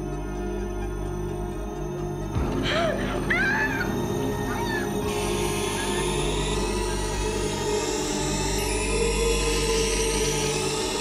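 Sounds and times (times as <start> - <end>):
low synthesizer drone: 0.0 - 11.0.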